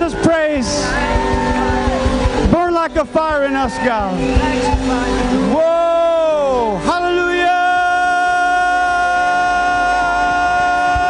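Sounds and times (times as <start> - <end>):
live worship band: 0.0 - 11.0.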